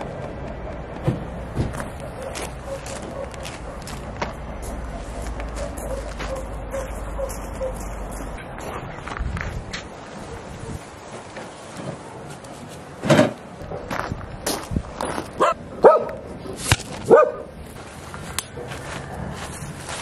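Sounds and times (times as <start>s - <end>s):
dog barking: 2.1s - 4.0s, 5.1s - 7.9s, 15.4s - 16.2s, 17.1s - 17.5s.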